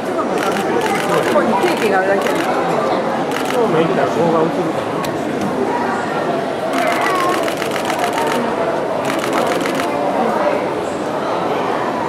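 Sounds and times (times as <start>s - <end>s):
crowd chattering: 0.0s - 12.0s
camera shutter burst: 6.7s - 8.4s, 9.0s - 10.0s.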